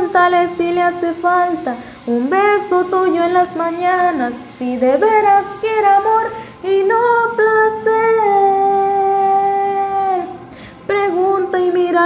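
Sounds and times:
woman singing unaccompanied: 0.0 - 12.0
breath: 1.8 - 2.1, 6.3 - 6.6, 10.5 - 10.9.

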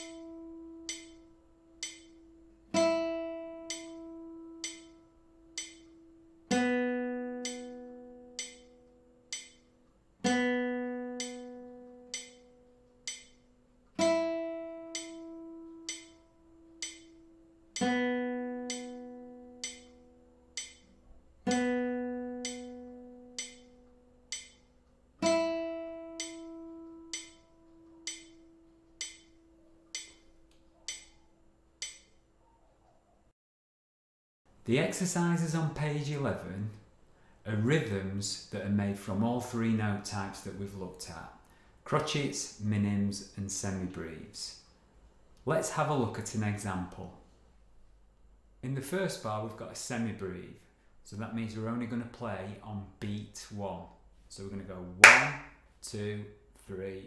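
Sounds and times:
metronome click: 0.0 - 2.2, 3.6 - 6.0, 7.4 - 9.7, 11.1 - 13.5, 14.9 - 18.0, 18.6 - 20.9, 21.5 - 21.8, 22.4 - 25.0, 26.1 - 31.2, 31.8 - 32.2
classical guitar open strings ringing: 0.0 - 9.6, 10.2 - 23.8.

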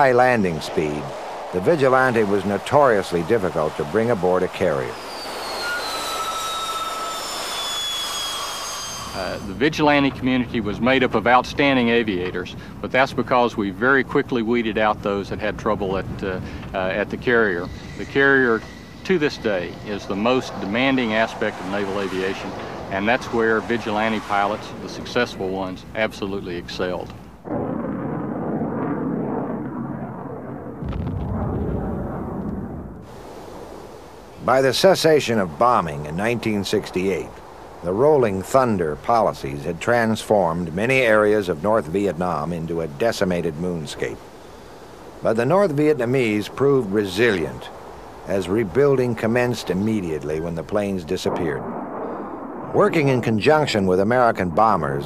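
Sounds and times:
muffled explosions rumbling: 0.0 - 5.2, 9.2 - 55.0
jet engine rush and turbine whine: 0.0 - 12.8, 15.8 - 30.8.

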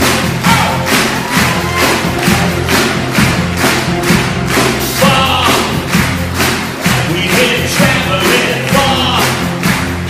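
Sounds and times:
orchestra playing: 0.0 - 10.0.

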